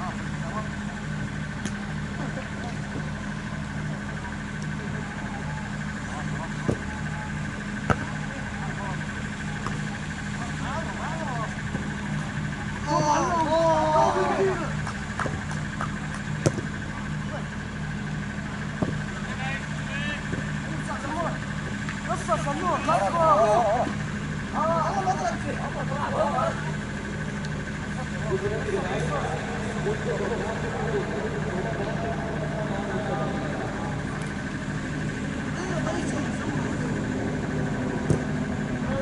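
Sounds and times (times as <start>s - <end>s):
players calling out: 0.0s - 39.0s
steady low hum: 0.0s - 39.0s.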